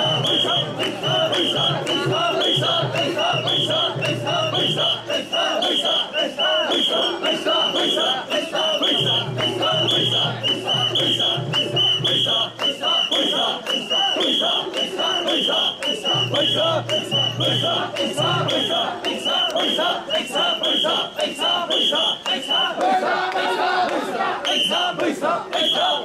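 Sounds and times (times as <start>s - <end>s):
whistle short sharp blasts: 0.0s - 17.7s
crowd chanting in unison: 0.0s - 26.0s.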